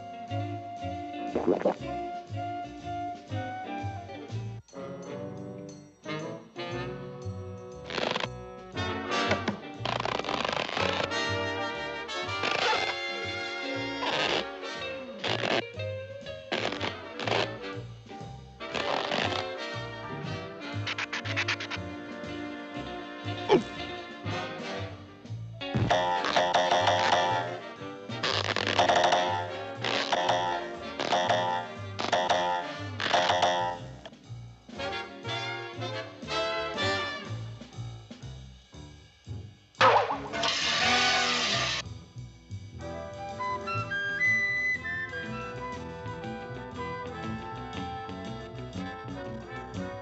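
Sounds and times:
cartoon music with walking bass: 0:00.0 - 0:50.0
scratchy rustling sound effect: 0:07.9 - 0:08.3, 0:09.8 - 0:11.2, 0:12.3 - 0:13.0, 0:14.0 - 0:14.6, 0:15.2 - 0:15.6, 0:16.5 - 0:17.6, 0:18.7 - 0:19.6, 0:20.8 - 0:21.8, 0:28.2 - 0:29.1, 0:29.8 - 0:30.2, 0:39.8 - 0:41.8
loud musical accent: 0:39.8 - 0:41.8.

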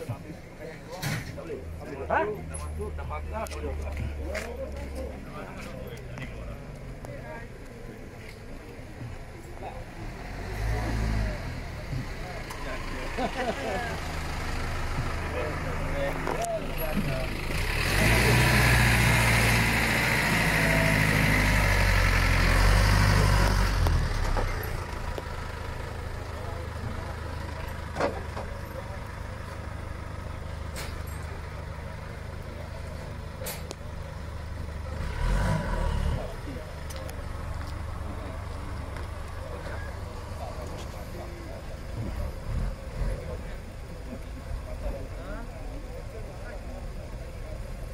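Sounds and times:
large vehicle engine: 0:00.0 - 0:47.9.

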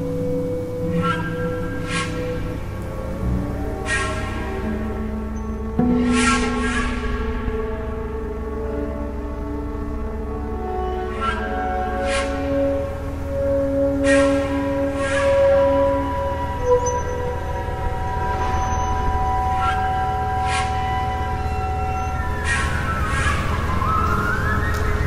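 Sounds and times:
sliding siren-like tone: 0:00.8 - 0:25.0
steady low rumble: 0:04.4 - 0:25.0.

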